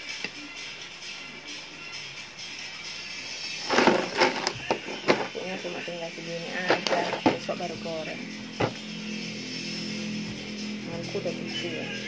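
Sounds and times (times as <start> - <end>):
soft background music: 0.0 - 12.0
plastic jar rustling clatter: 3.6 - 5.4, 6.6 - 7.5.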